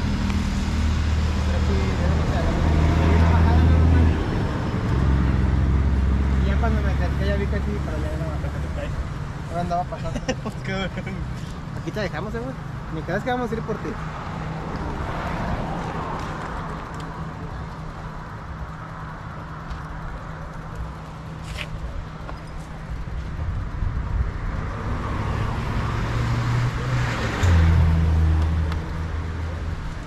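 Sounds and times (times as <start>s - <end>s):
vehicles passing on road: 0.0s - 30.0s.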